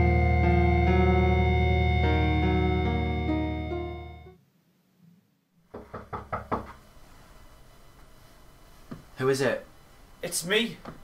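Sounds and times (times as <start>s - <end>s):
knuckles knocking on door: 5.7s - 6.8s.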